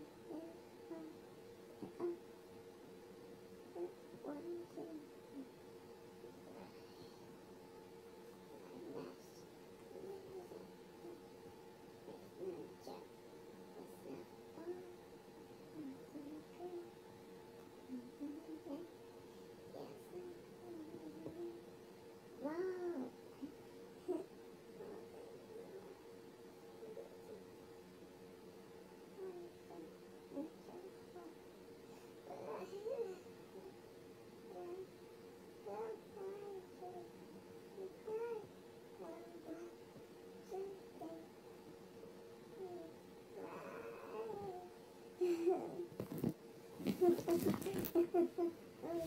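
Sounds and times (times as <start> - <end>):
faint steady hum: 0.0 - 49.0
faint whining vocal sounds: 0.0 - 49.0.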